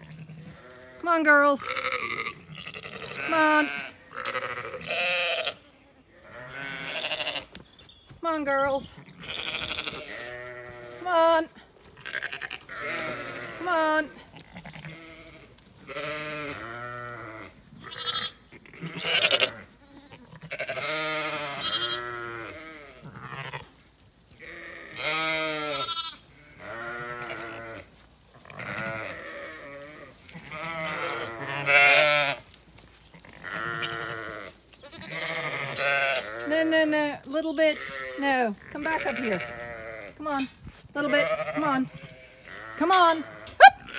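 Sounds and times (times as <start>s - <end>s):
sheep and lambs bleating: 0.0s - 7.6s, 8.2s - 43.9s.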